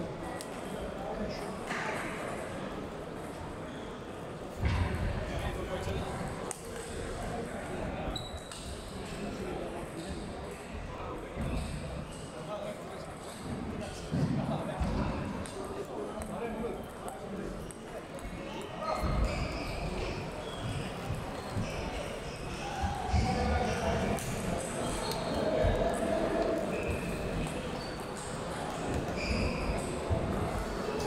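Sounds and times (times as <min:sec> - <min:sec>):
murmur of voices: 0:00.0 - 0:31.0.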